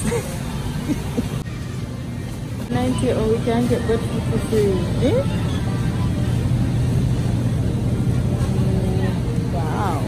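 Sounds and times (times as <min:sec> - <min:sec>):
grocery store background hum: 0:00.0 - 0:10.0.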